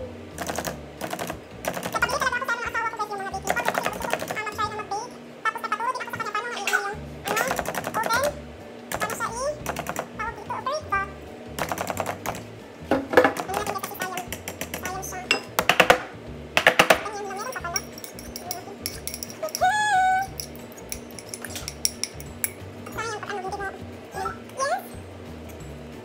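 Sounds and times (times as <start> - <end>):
sharp clinks and taps: 16.6 - 19.7, 20.3 - 22.6.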